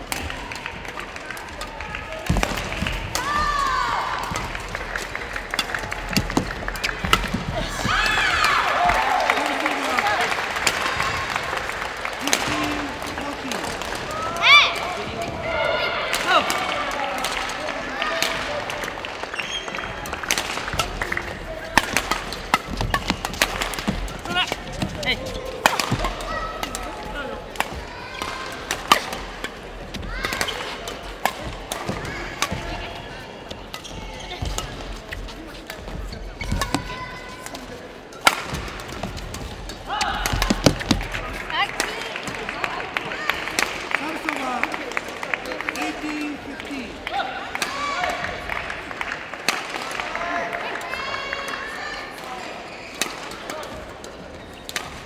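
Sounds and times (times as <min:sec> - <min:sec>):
players' voices and chatter: 0:00.0 - 0:55.0
racket hitting shuttlecock: 0:01.6 - 0:09.0, 0:20.0 - 0:32.9, 0:33.5 - 0:37.0, 0:38.2 - 0:41.2
shoe squeaks: 0:19.4 - 0:19.9, 0:33.8 - 0:34.6.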